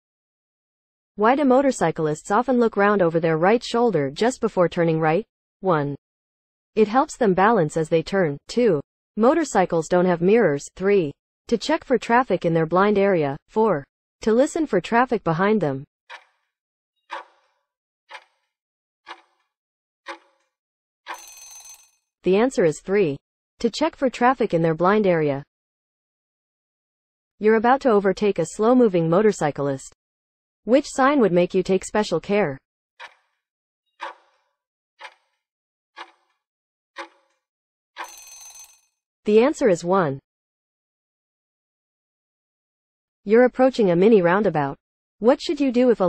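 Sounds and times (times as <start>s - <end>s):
ringing tone: 21.1s - 22.0s, 38.0s - 38.9s.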